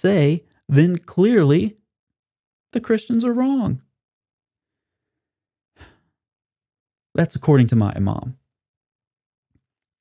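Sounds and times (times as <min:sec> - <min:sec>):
short sigh: 0:05.8 - 0:06.1.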